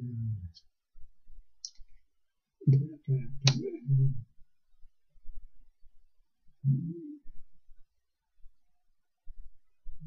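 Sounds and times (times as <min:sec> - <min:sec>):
man humming mm-hmm: 0:06.6 - 0:07.3.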